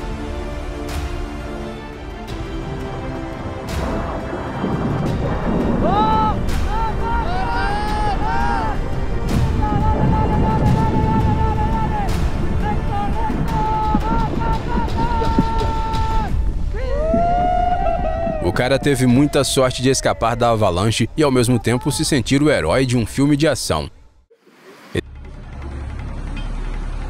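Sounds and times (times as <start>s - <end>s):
avalanche rumbling: 2.3s - 22.3s.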